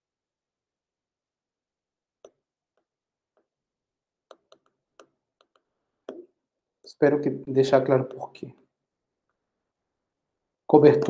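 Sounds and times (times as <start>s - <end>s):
stylus tapping tablet screen: 2.2s - 3.6s, 4.2s - 7.0s, 7.7s - 8.8s.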